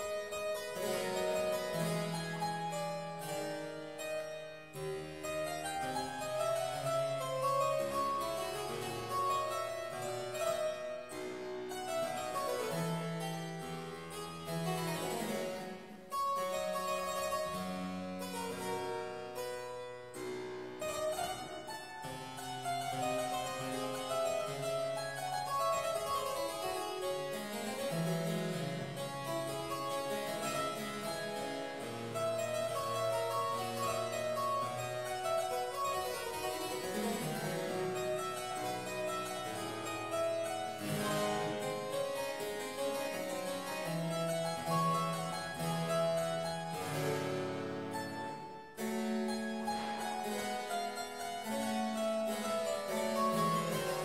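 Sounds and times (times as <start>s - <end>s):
solo harpsichord playing: 0.0s - 54.0s.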